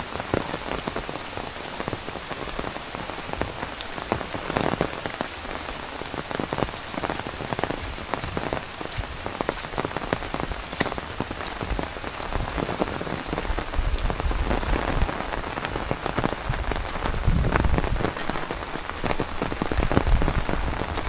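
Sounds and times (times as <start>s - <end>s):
heavy rain: 0.0s - 21.0s
raindrops hitting close by: 0.0s - 21.0s.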